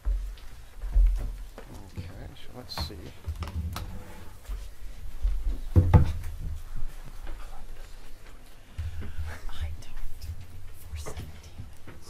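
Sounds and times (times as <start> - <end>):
people half-whispering: 9.0 - 11.6.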